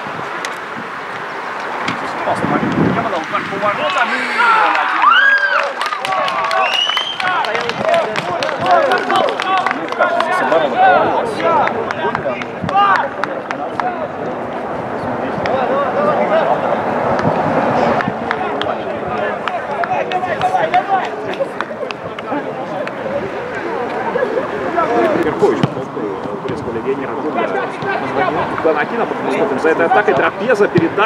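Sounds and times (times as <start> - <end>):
people shouting and calling out: 3.2 - 14.3, 17.9 - 25.6.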